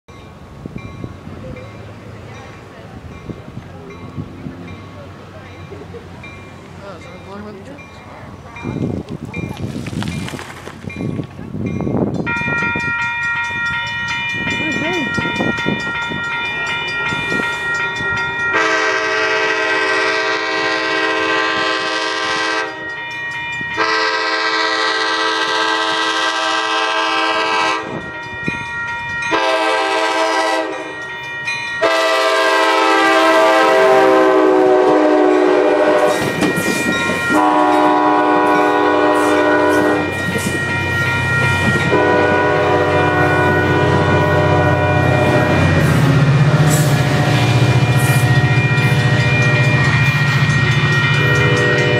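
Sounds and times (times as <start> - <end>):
railroad crossing bell ringing: 0.1 - 51.9
train air horn blasts: 18.5 - 22.9, 23.8 - 28.0, 29.3 - 30.9, 31.8 - 41.0, 41.6 - 51.9.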